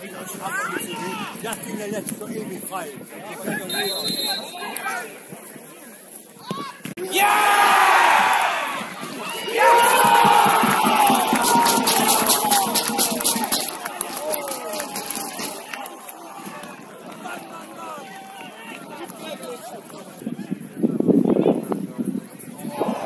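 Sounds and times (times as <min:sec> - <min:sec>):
crowd cheering: 0:07.0 - 0:19.6, 0:22.6 - 0:23.0
quick claps: 0:09.9 - 0:16.2.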